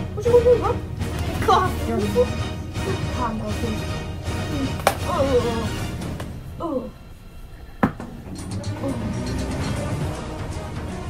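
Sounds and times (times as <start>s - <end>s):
background music: 0.0s - 11.0s
toy sword whack: 4.8s - 5.1s.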